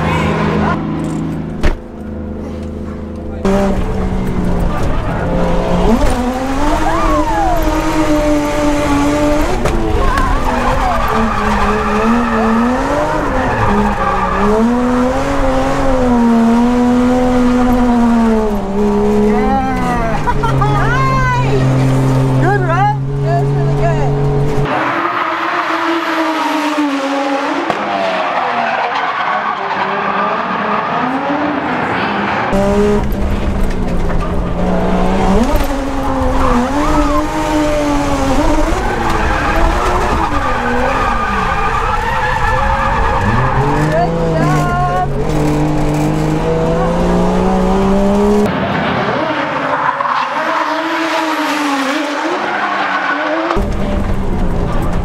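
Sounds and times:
car engine revving: 0.0s - 55.0s
tyres squealing: 5.9s - 15.4s, 35.5s - 45.8s.

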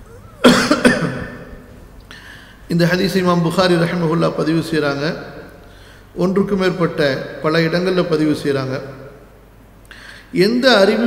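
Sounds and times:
man coughing: 0.4s - 1.6s.

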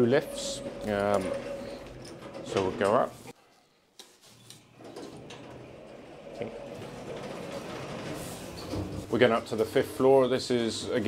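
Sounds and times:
lift running with low hum: 0.0s - 2.8s
lift doors sliding open: 0.0s - 3.3s, 4.7s - 11.0s.

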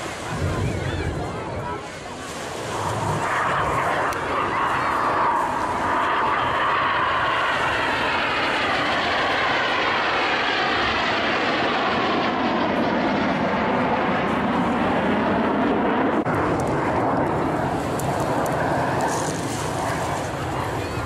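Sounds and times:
jet flying past: 0.0s - 21.0s.

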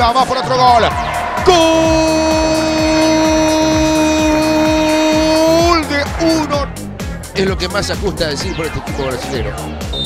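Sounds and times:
background music with beat: 0.0s - 10.0s
commentator's drawn-out goal cry: 1.4s - 6.6s.

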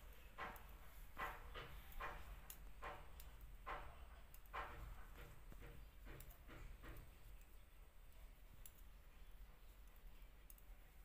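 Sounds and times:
knitting needles clicking: 0.0s - 11.0s.

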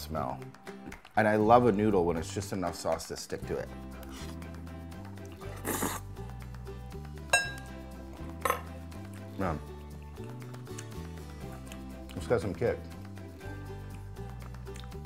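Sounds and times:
background music with bass line: 0.0s - 15.0s
eating noises: 3.9s - 6.4s, 7.6s - 12.3s, 13.3s - 15.0s
noodle slurp: 4.0s - 6.2s
metal fork clinking on ceramic bowl: 7.4s - 7.7s.

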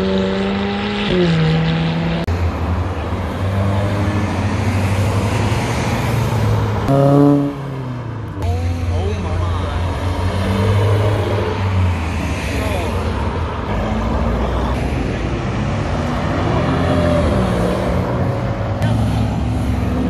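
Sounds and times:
indistinct voices: 8.4s - 20.0s.

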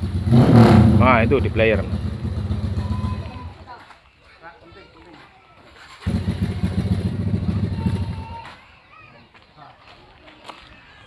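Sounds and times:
motor scooter engine running: 6.0s - 8.3s.

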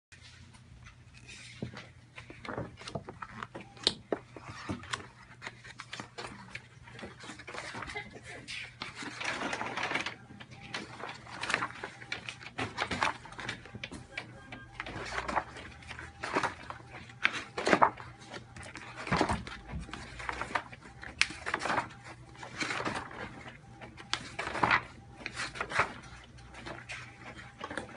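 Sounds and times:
rustling of sample book pages: 0.1s - 27.9s.

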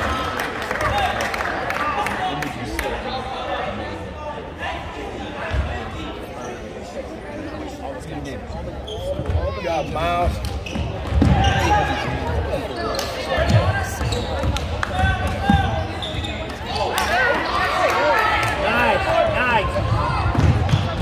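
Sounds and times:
chatter of spectators: 0.0s - 21.0s.

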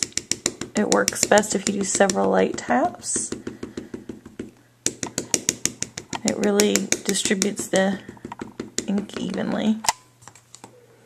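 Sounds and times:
stamp tapping on ink pad: 0.0s - 9.4s.

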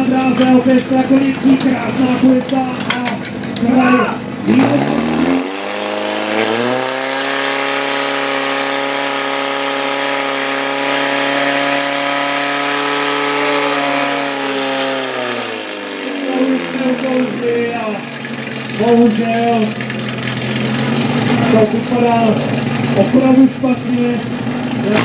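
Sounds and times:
pump engine revving: 0.0s - 25.0s.

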